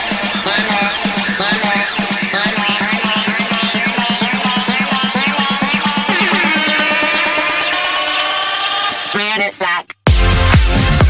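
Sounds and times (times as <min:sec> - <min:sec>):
heavy beat with deep bass: 0:00.0 - 0:08.7
held vocal with pitch glides: 0:00.5 - 0:09.9.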